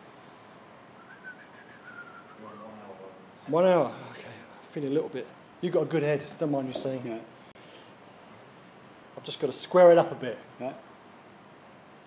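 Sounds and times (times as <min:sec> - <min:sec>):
room hiss: 0:00.0 - 0:12.0
faint thin whistle tone: 0:01.0 - 0:03.0.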